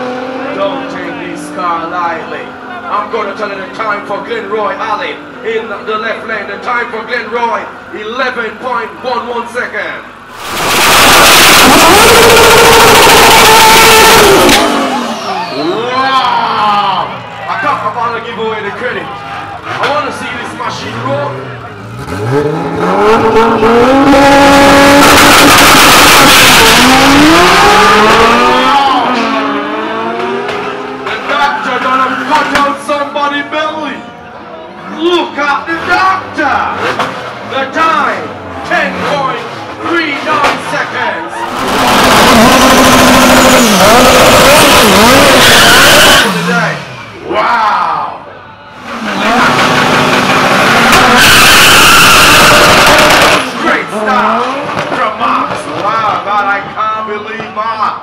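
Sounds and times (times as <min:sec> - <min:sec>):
drag car engine revving: 0:00.0 - 0:18.6, 0:19.4 - 0:33.4, 0:34.8 - 0:47.5, 0:48.8 - 0:56.3
tires squealing: 0:10.3 - 0:57.5.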